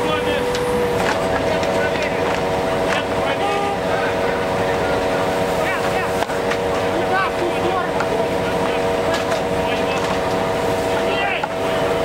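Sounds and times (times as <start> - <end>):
faint voices: 0.0 - 12.0.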